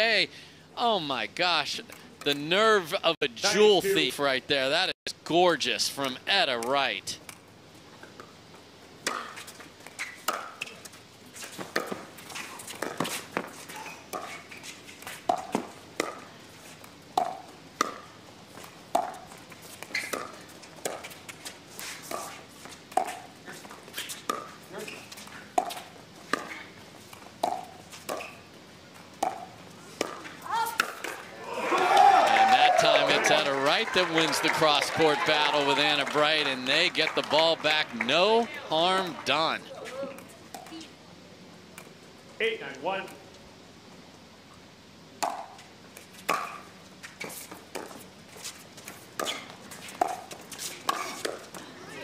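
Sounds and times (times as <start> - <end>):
voices: 0.0 - 7.3, 29.9 - 41.0
paddles hitting plastic ball: 25.5 - 28.4.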